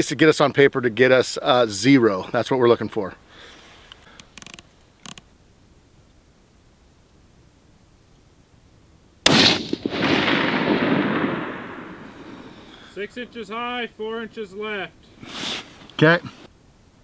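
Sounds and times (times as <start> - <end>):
faint clicks: 3.8 - 5.3
rifle shot with echo: 9.2 - 12.9.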